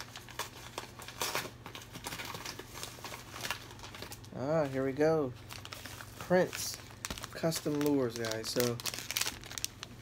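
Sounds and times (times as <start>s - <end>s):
packaging crinkling and tearing: 0.0s - 10.0s.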